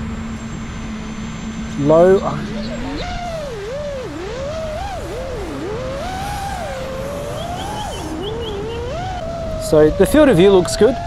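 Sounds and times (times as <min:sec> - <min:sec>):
quadcopter motors whining: 0:00.0 - 0:11.0.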